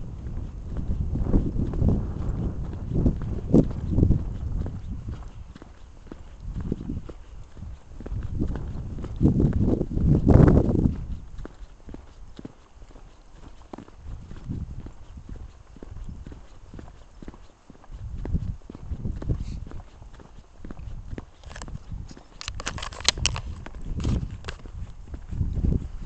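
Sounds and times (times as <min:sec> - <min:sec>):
footsteps on concrete slabs: 0:00.0 - 0:26.0
wind noise on microphone: 0:00.0 - 0:26.0
sharp clicks and scuffs: 0:21.2 - 0:24.8.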